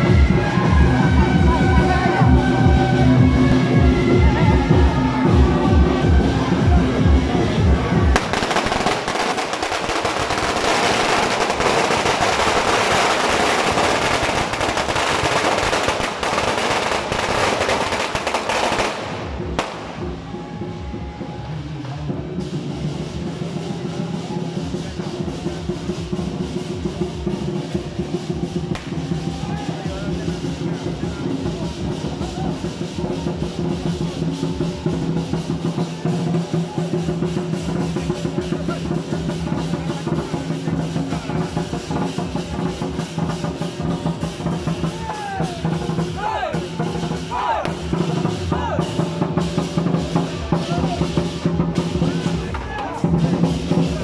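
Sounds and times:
lion dance drumming and percussion: 0.0s - 54.0s
firecrackers crackling: 6.2s - 21.5s, 22.2s - 54.0s.

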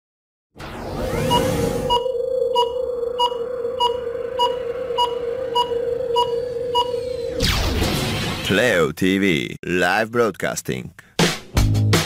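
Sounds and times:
low electronic hum: 0.6s - 8.4s
short high beeps: 1.2s - 7.4s.

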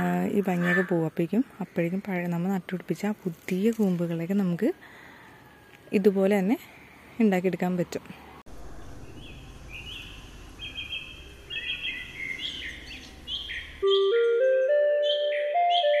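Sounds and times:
birds chirping: 0.0s - 2.6s, 8.8s - 16.0s
low outdoor hum: 7.9s - 13.8s
musical jingle: 13.8s - 16.0s.

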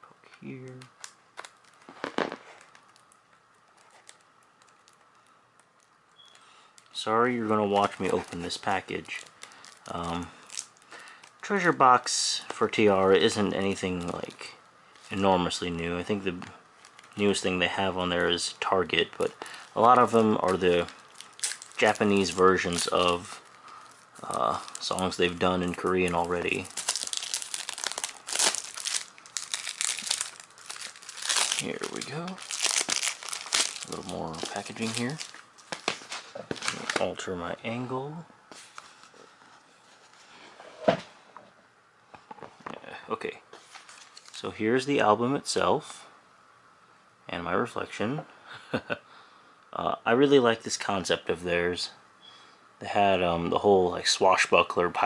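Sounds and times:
plastic wrap crinkling: 0.4s - 37.4s, 43.6s - 44.5s.

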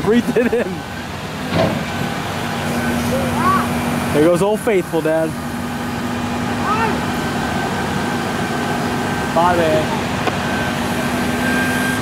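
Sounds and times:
tow truck humming: 0.0s - 12.0s.

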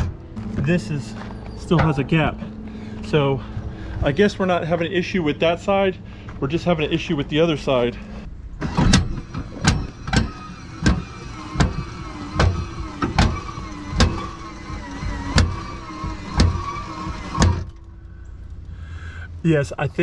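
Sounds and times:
electric motor whining: 8.7s - 18.0s.

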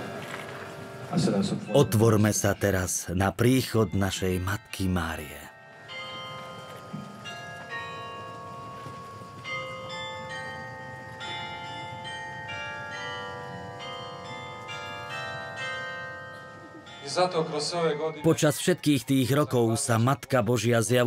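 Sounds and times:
church bells ringing: 0.0s - 21.0s.

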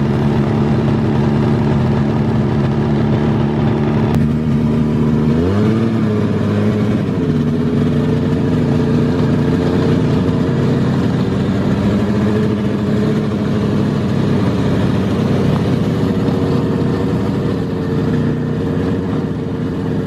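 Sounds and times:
snowmobile engine revving: 0.0s - 20.0s.

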